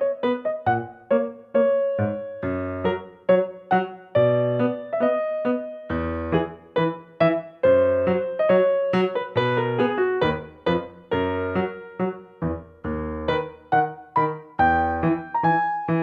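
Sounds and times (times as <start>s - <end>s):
keyboard tune in piano tone: 0.0s - 16.0s.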